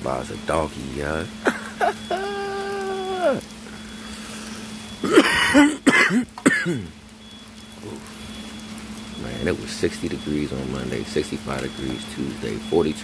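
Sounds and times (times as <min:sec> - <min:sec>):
drawn-out laugh: 0:01.4 - 0:03.2, 0:05.0 - 0:05.9
man coughing: 0:01.5 - 0:02.2, 0:05.0 - 0:06.9.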